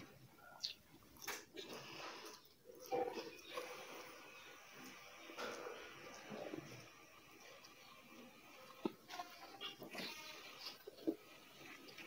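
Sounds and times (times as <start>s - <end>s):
wet mouth noises: 0.0s - 3.8s
person chewing and slurping: 0.0s - 5.2s, 6.9s - 12.0s.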